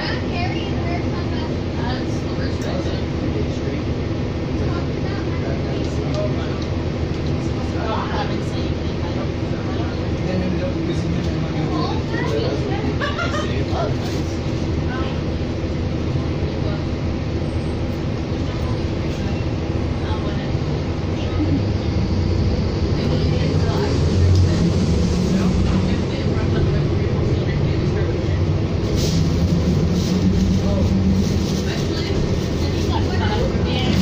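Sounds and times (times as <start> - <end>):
bus diesel engine humming: 0.0 - 34.0.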